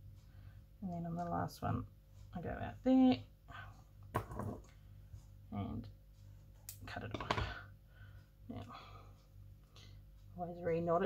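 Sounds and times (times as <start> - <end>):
faint steady hum: 0.0 - 11.0
woman speaking: 0.8 - 3.3, 10.4 - 11.0.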